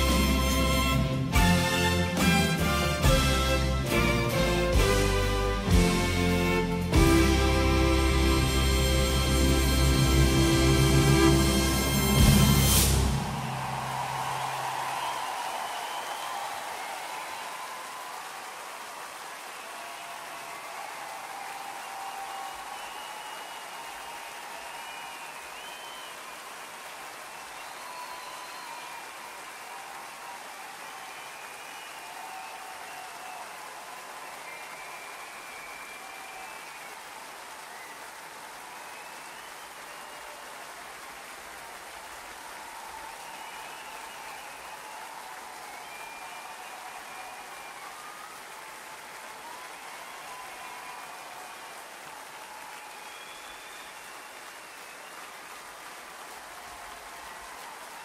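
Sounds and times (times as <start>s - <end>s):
audience applauding: 0.0s - 58.0s
whistles: 9.6s - 18.0s, 19.6s - 40.6s, 42.8s - 55.8s.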